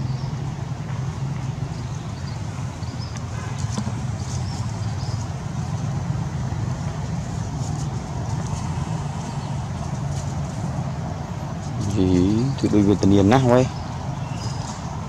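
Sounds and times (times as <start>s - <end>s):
low motor rumble: 0.0s - 15.0s.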